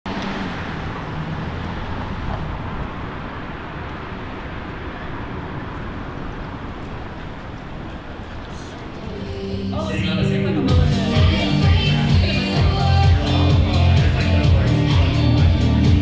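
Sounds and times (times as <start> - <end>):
traffic rumble and hiss: 0.1 - 15.8.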